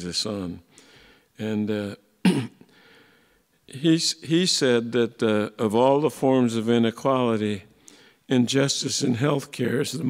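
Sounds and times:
speech: 0.0 - 0.6, 1.4 - 2.0, 3.7 - 7.7, 8.3 - 10.0
faint breath: 0.7 - 1.4, 2.7 - 3.5, 7.8 - 8.3
man clearing his throat: 2.2 - 2.7.

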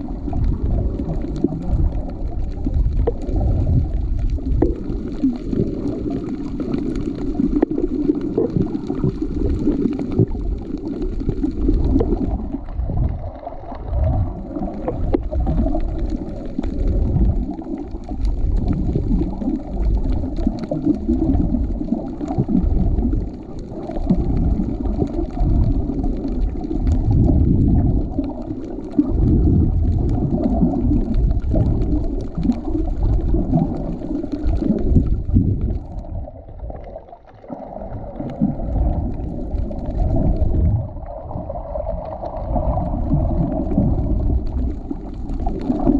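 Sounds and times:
faint clicks and crackles: 0.0 - 45.9
low underwater rumble: 0.0 - 45.9.

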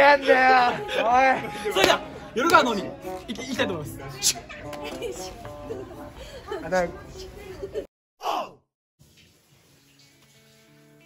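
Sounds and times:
person laughing: 4.8 - 6.6.

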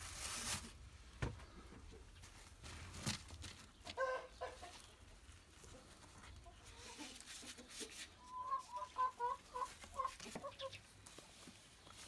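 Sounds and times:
hen clucking: 3.7 - 10.9.

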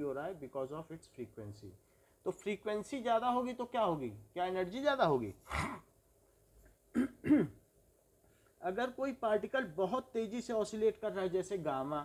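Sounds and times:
person clearing throat: 5.4 - 5.9, 6.9 - 7.6.

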